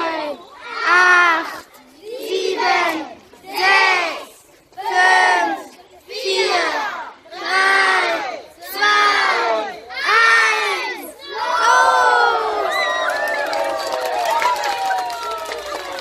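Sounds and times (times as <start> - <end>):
children chanting in unison: 0.0 - 12.6.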